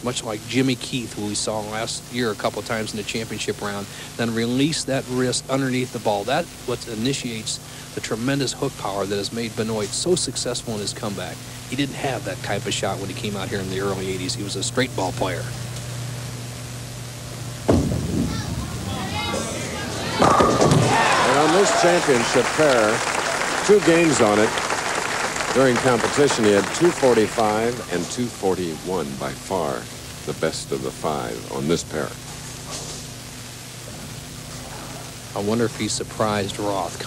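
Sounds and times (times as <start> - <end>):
steady hiss and hum: 0.0 - 37.0
bowling ball thump and rolling: 17.6 - 18.9, 19.8 - 21.0.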